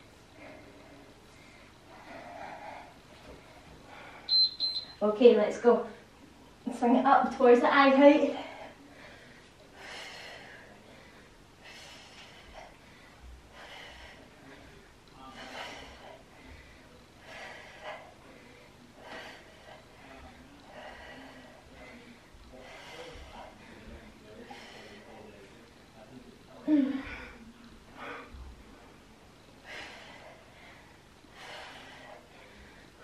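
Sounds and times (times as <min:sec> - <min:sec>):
woman breathing out forcefully: 0:13.6 - 0:14.2.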